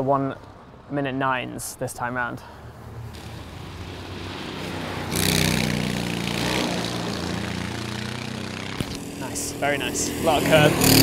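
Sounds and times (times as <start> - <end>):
racing kart engine: 3.1 - 11.0.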